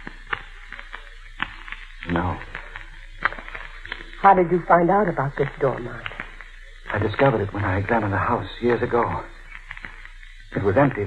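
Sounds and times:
radio recording hiss and hum: 0.0 - 11.0.

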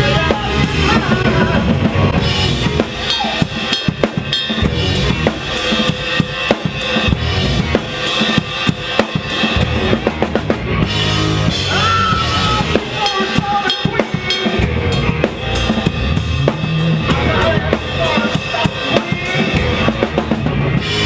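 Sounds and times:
drum kit sharp hits: 0.0 - 21.0
rock band playing instrumental: 0.0 - 21.0.

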